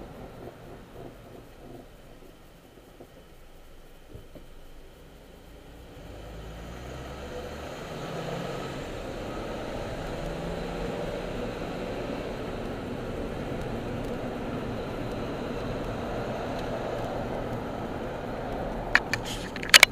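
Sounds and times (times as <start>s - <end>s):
car engine and road noise: 0.0s - 19.9s.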